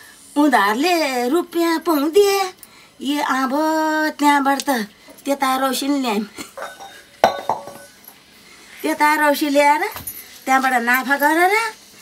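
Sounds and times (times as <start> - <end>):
woman speaking: 0.4 - 6.3, 8.8 - 11.8
dishes clinking: 6.4 - 8.1.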